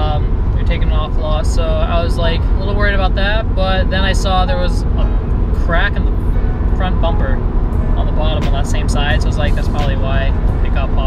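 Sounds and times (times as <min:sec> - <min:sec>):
man talking: 0:00.0 - 0:06.2, 0:06.8 - 0:07.4, 0:08.0 - 0:11.0
road and engine noise: 0:00.0 - 0:11.0.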